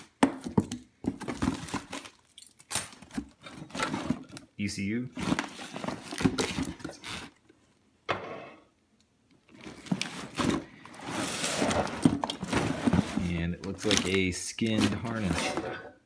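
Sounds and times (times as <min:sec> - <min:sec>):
wires and plastic connectors rustling: 0:00.0 - 0:07.6, 0:09.3 - 0:16.0.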